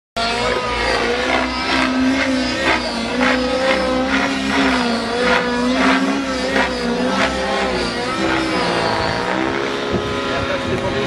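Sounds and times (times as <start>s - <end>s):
aircraft engine droning: 0.2s - 11.0s.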